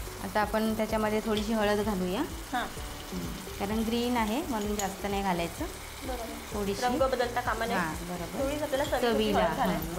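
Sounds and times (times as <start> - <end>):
frying hiss: 0.0 - 9.9
woman talking: 3.6 - 9.9.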